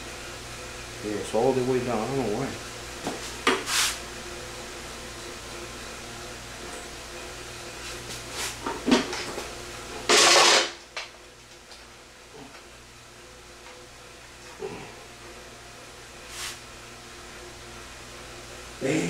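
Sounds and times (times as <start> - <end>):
loud scrape: 3.7 - 4.0.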